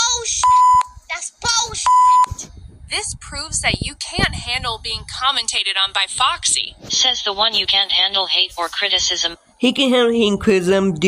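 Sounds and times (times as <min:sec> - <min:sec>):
censor bleep: 0:00.4 - 0:01.0, 0:01.9 - 0:02.4
person speaking: 0:06.7 - 0:11.0.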